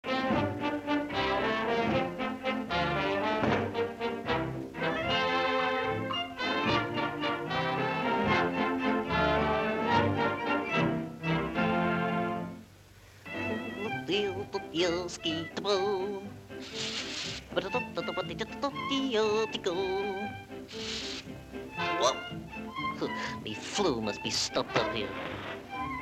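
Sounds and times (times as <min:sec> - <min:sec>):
brass-led orchestral music: 0:00.0 - 0:12.7, 0:13.3 - 0:14.5, 0:20.5 - 0:26.0.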